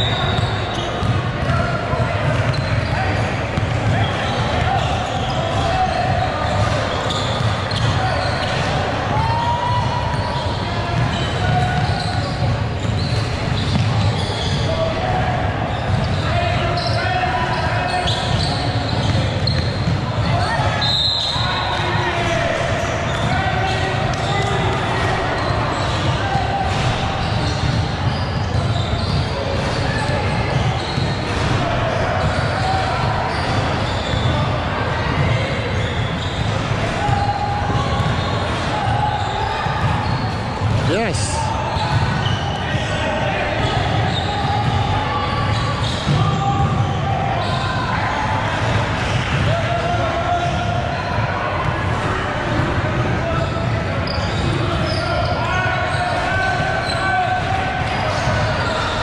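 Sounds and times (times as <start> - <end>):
echoing voices: 40.4 - 59.0.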